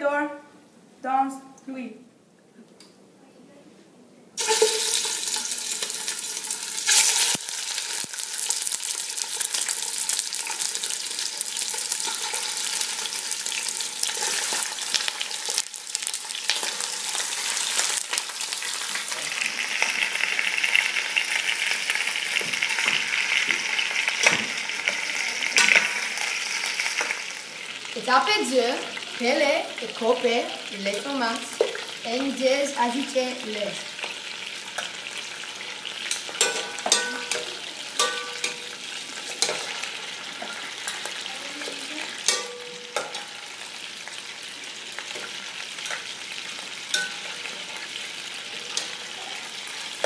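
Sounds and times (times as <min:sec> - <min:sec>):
chicken sizzling in hot oil: 0:04.4 - 0:50.0.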